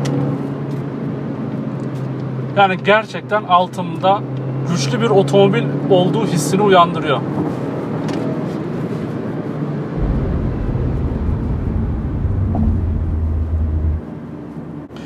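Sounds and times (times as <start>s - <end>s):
car cabin hum: 10.0s - 14.0s
deep low rumble: 10.0s - 14.2s.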